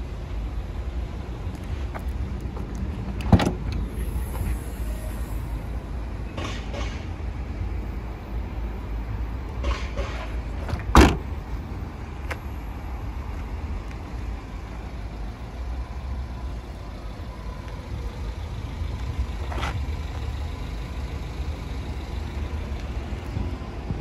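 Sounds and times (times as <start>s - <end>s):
car tailgate thump: 10.7s - 11.2s.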